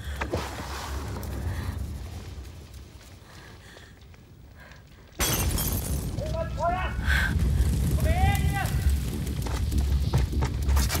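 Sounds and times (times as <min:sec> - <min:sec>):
glass shattering: 0:05.2 - 0:06.2
deep rumble: 0:06.0 - 0:11.0.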